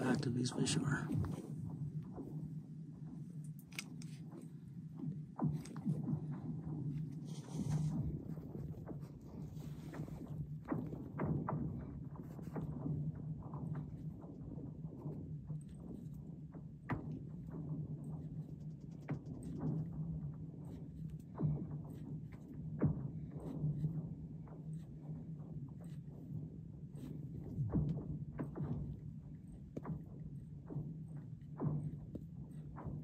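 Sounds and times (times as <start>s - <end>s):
low steady hum: 0.0s - 33.0s.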